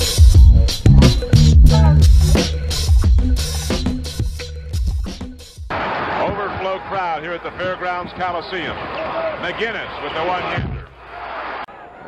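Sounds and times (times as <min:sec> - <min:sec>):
arena crowd noise: 0:05.7 - 0:12.0.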